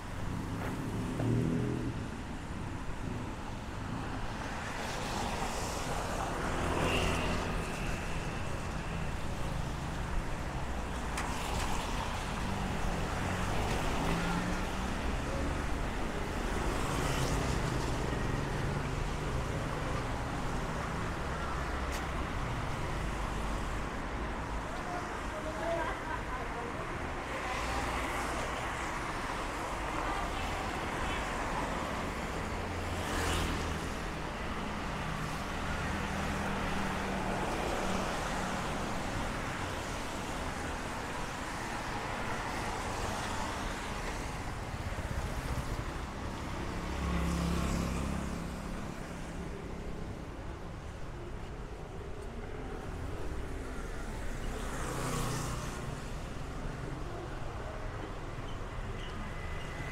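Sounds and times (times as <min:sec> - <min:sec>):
passing road traffic: 0:00.0 - 0:59.9.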